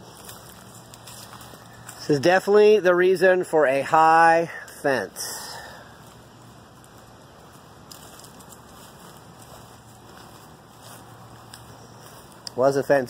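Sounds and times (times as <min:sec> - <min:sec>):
light crackling: 0:00.0 - 0:02.2, 0:04.6 - 0:12.8.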